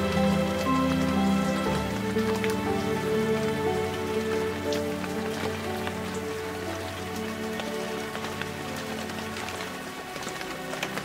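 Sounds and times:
ambient meditation music: 0.0s - 11.0s
rain drops ticking: 0.0s - 11.0s.

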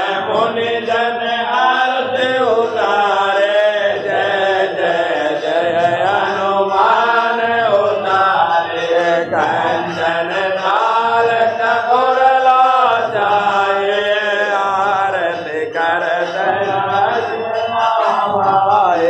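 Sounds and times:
person chanting a hymn: 0.0s - 19.0s.

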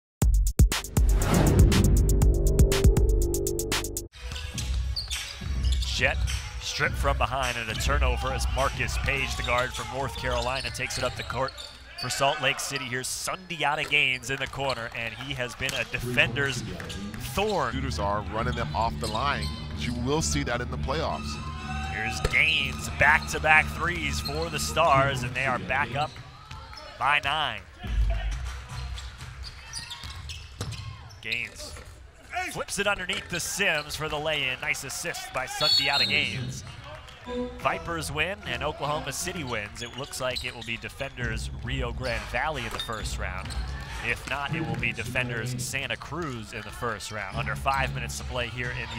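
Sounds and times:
musical intro: 0.6s - 4.1s, 37.3s - 38.2s
crowd noise: 4.2s - 48.9s.

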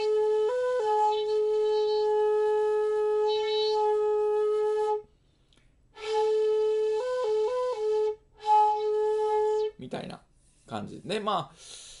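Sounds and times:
bamboo flute holding low note: 0.0s - 5.1s.

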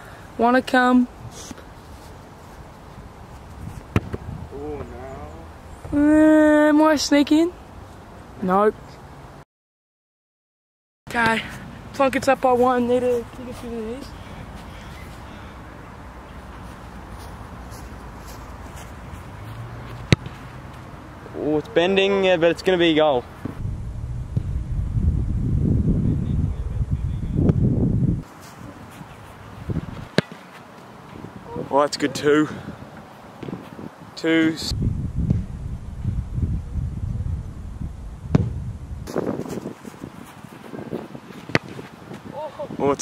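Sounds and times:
faint open-air ambience: 0.0s - 9.4s, 11.1s - 43.0s
wind noise on microphone: 3.0s - 5.0s, 23.4s - 30.2s, 31.1s - 43.0s
boot kicking football thud: 3.9s - 4.3s, 20.0s - 20.4s, 29.8s - 30.4s, 38.3s - 39.8s, 41.3s - 42.3s.

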